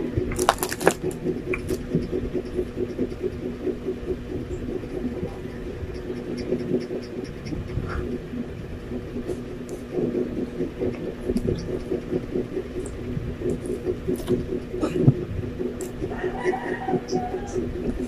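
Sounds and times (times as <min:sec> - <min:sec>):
low machine hum: 0:00.0 - 0:18.0.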